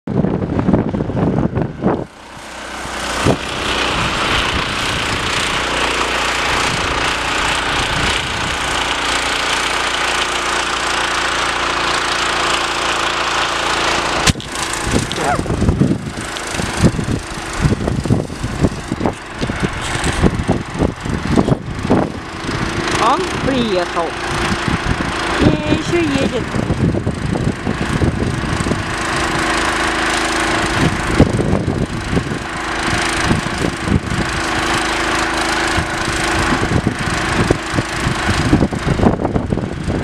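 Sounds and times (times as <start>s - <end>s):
petrol engine running under load: 0.6s - 40.0s.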